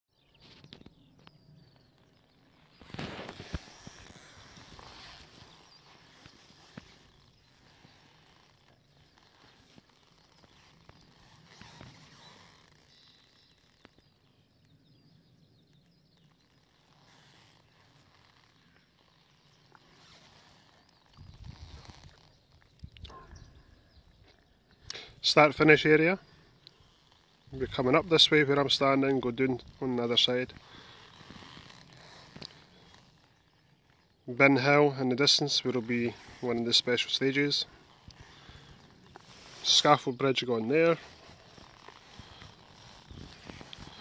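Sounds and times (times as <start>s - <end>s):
wind buffeting microphone: 21.1s - 22.0s.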